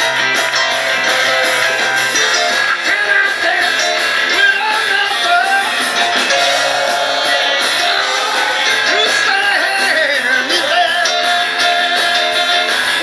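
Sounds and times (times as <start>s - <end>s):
rock and roll band playing: 0.0s - 13.0s.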